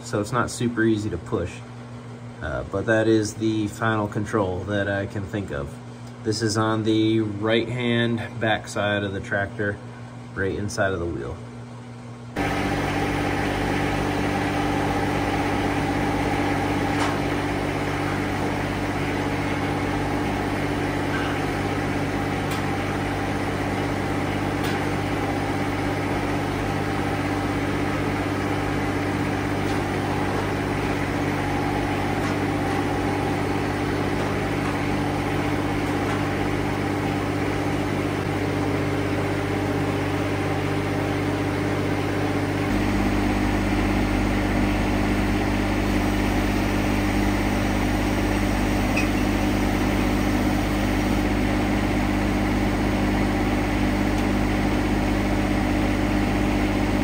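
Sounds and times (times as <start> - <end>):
diesel tractor engine running: 12.3 - 57.0.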